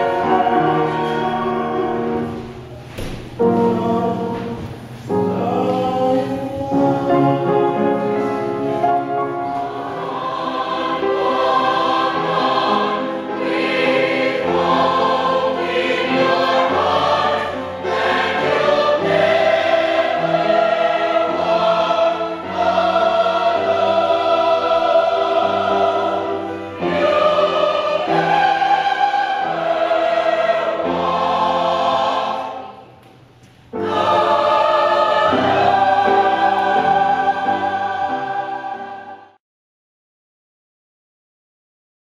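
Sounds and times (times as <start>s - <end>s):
mixed chorus singing: 0.0s - 33.0s, 33.7s - 39.4s.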